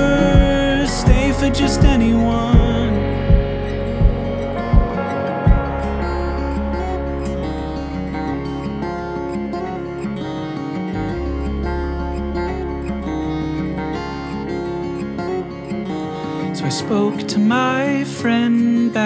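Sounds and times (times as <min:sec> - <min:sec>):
held low bass note: 0:00.0 - 0:09.8, 0:11.0 - 0:16.0
acoustic guitar strumming: 0:00.0 - 0:19.0.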